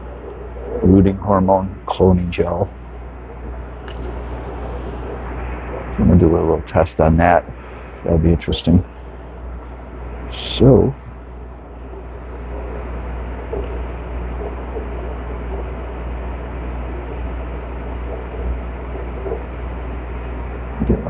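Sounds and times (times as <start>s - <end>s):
air pump humming: 0.0s - 21.0s.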